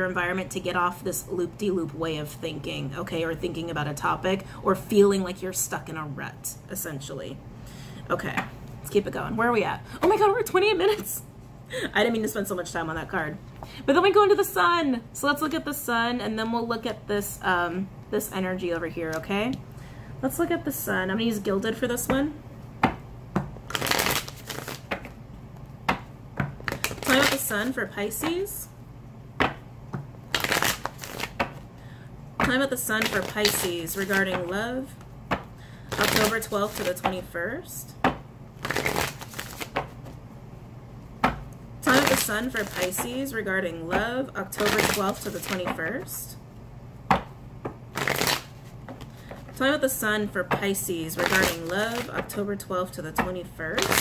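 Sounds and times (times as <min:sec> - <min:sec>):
cards slapping: 0:23.6 - 0:25.2, 0:25.9 - 0:27.8, 0:29.4 - 0:31.7, 0:32.4 - 0:34.5, 0:35.3 - 0:37.2, 0:38.0 - 0:40.2, 0:41.2 - 0:43.1, 0:44.6 - 0:45.8, 0:47.9 - 0:49.4, 0:51.2 - 0:52.3, 0:53.8 - 0:54.0
cards rustling while shuffled: 0:23.7 - 0:25.2, 0:26.6 - 0:27.8, 0:30.3 - 0:31.6, 0:32.9 - 0:34.5, 0:35.9 - 0:37.2, 0:38.6 - 0:40.2, 0:41.9 - 0:43.1, 0:44.6 - 0:45.8, 0:47.9 - 0:49.6, 0:51.1 - 0:52.3, 0:53.8 - 0:54.0.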